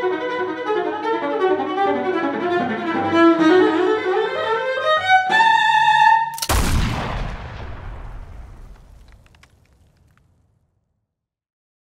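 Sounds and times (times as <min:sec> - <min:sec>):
faint crackles: 0:07.4 - 0:10.6.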